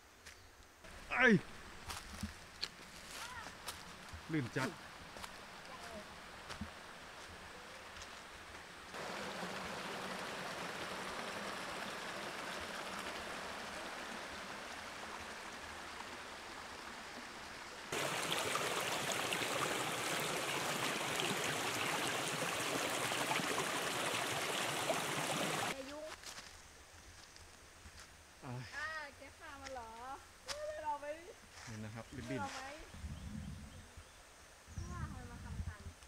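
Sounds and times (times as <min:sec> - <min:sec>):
mountain stream rushing over rock: 0:08.9 - 0:25.8.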